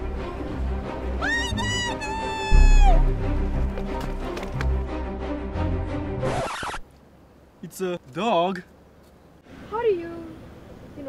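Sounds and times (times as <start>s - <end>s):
background music: 0.0s - 6.8s
meow-like animal cry: 1.2s - 3.0s.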